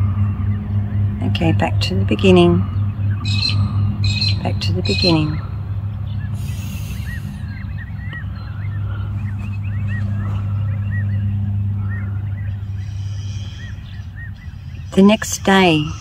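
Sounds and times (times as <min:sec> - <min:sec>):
birds chirping: 0:00.0 - 0:16.0
low steady hum: 0:00.0 - 0:16.0.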